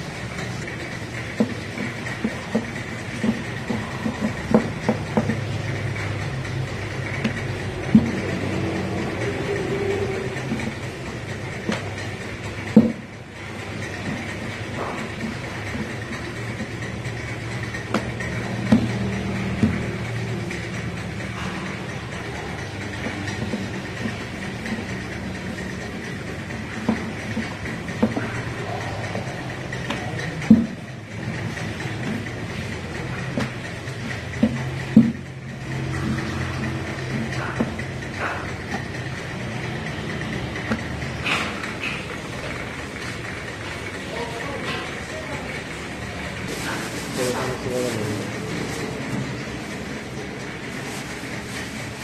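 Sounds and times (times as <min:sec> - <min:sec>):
rolling pin rumbling on wooden board: 0:00.0 - 0:52.0
steady background hum: 0:00.0 - 0:52.0.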